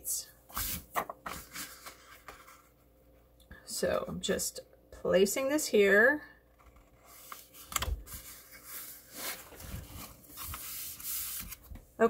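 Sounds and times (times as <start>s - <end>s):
hands rubbing paper: 7.1s - 11.7s.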